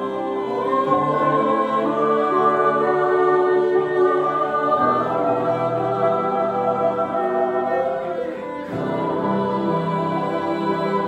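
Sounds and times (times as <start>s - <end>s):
mixed choir singing chords: 0.0s - 11.0s.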